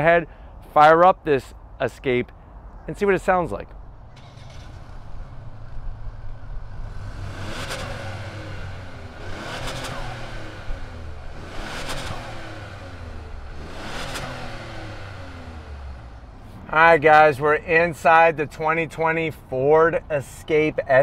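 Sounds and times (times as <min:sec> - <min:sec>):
car engine revving: 0:04.1 - 0:17.2.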